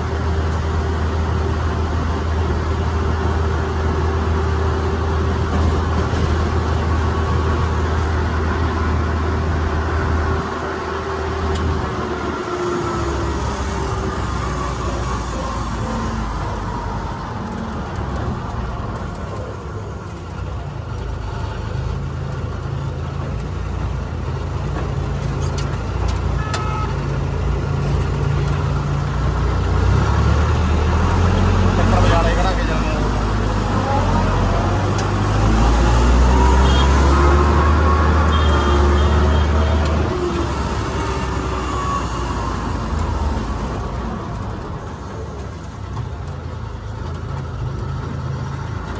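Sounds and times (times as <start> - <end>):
diesel engine running: 0.0 - 48.9
road and traffic noise: 0.0 - 48.9.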